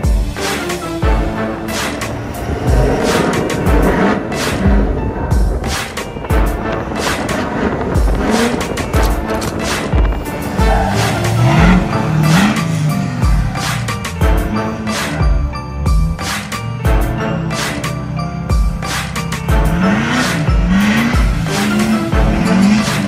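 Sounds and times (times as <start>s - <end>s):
diesel truck engine revving: 0.0s - 23.0s
music with steady beat: 0.0s - 23.0s.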